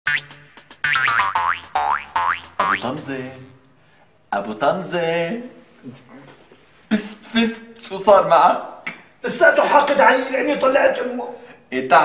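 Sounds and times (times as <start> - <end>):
comic boing sound effect: 0.1 - 3.0.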